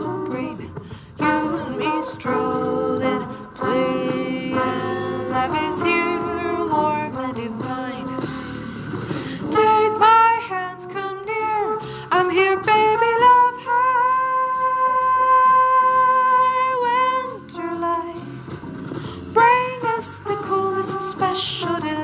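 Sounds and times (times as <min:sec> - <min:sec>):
woman singing jazz vocalese: 0:00.0 - 0:08.5, 0:09.3 - 0:18.3, 0:19.3 - 0:22.0
instrumental backing: 0:00.0 - 0:22.0.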